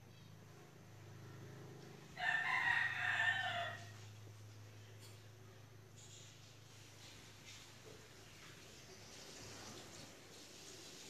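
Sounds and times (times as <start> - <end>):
low steady hum: 0.0 - 10.6.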